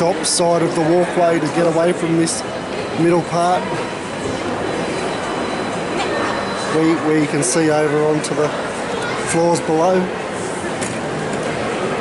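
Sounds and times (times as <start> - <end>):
busy shopping centre background: 0.0 - 12.0.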